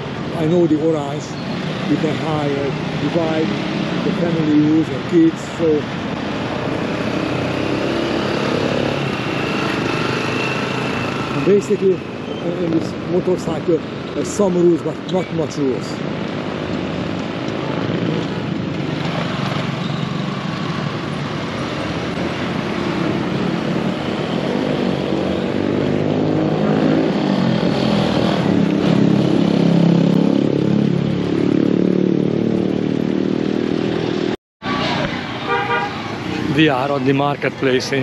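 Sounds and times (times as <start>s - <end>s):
motorcycles passing: 0.0s - 38.0s.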